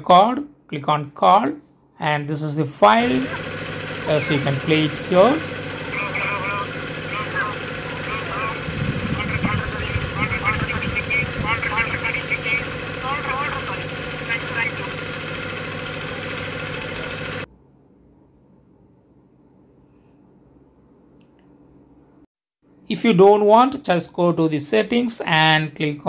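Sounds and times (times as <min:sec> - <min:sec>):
steady hum: 0:02.8 - 0:17.8
voices over phone loudspeaker: 0:02.9 - 0:17.4.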